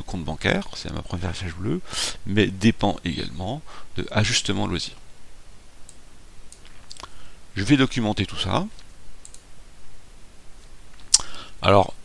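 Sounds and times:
low room hum: 0:00.0 - 0:12.0
computer mouse clicks: 0:08.8 - 0:09.5.

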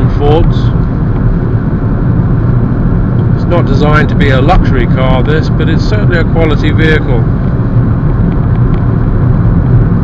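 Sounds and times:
car engine: 0:00.0 - 0:10.0
road and tyre noise in car: 0:00.0 - 0:10.0.

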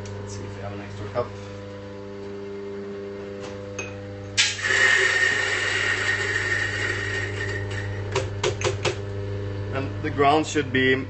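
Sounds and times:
coffee grinder motor humming: 0:04.2 - 0:11.0
coffee beans being ground: 0:04.4 - 0:07.9.

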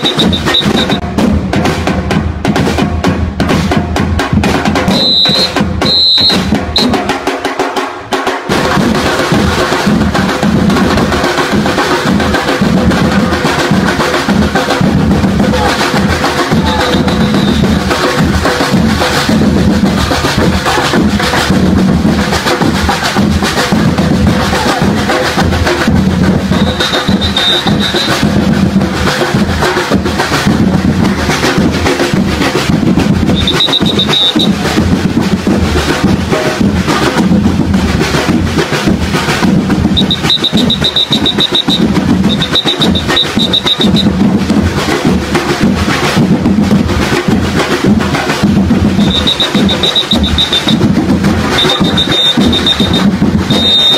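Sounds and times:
shrill trilling whistle: 0:00.0 - 0:01.0, 0:04.9 - 0:07.0, 0:16.8 - 0:17.7, 0:26.5 - 0:28.2, 0:33.3 - 0:34.5, 0:40.0 - 0:44.1, 0:49.0 - 0:50.8, 0:51.6 - 0:53.9
drum-driven percussion music: 0:00.0 - 0:53.9.

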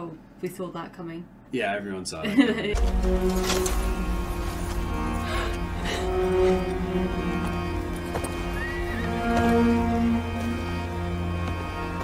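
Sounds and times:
film music with low held notes: 0:01.6 - 0:12.0.

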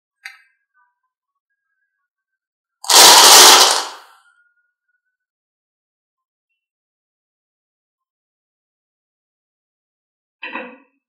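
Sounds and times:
marbles rattling in a cup: 0:02.8 - 0:04.1.

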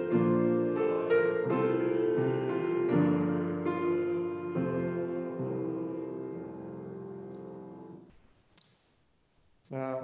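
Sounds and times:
man speaking: 0:09.6 - 0:10.0.

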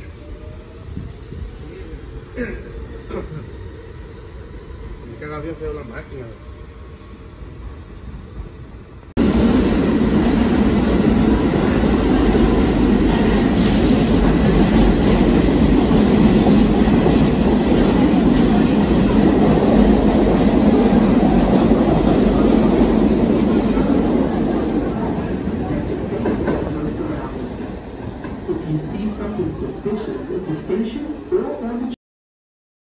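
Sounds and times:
subway train rumbling past: 0:00.0 - 0:32.0.

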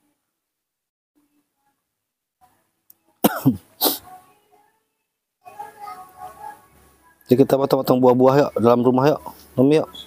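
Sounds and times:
person coughing: 0:03.2 - 0:04.0.

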